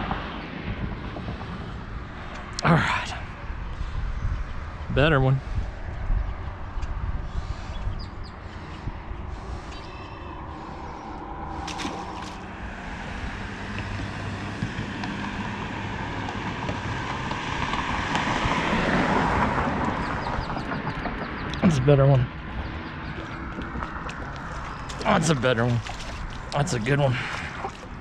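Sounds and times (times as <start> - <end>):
road traffic rush: 0.0 - 28.0
vehicle passing: 8.3 - 28.0.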